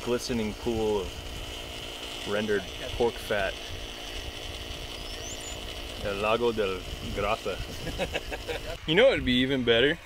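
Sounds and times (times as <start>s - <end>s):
rotisserie motor running: 0.0s - 10.0s
wind rumbling on microphone: 0.0s - 10.0s.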